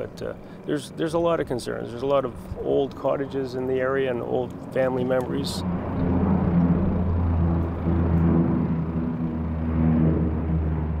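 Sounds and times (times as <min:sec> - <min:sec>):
propeller plane droning overhead: 0:00.0 - 0:11.0.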